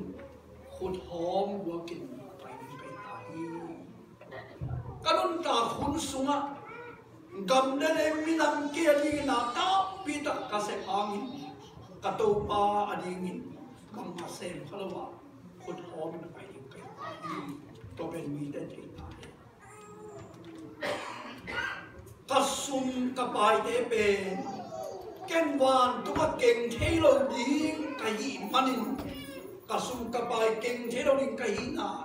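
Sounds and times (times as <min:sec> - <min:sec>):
man preaching: 0:00.0 - 0:00.2, 0:00.8 - 0:03.9, 0:05.0 - 0:06.6, 0:07.3 - 0:19.3, 0:22.2 - 0:32.0.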